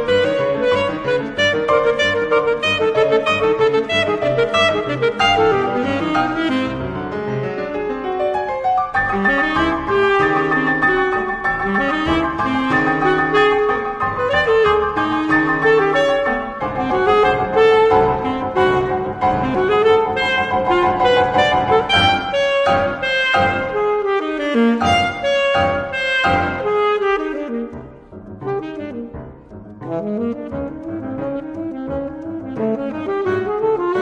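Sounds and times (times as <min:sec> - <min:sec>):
alto saxophone playing quick notes: 0:00.0 - 0:07.3, 0:09.0 - 0:34.0
piano accompaniment: 0:00.0 - 0:34.0.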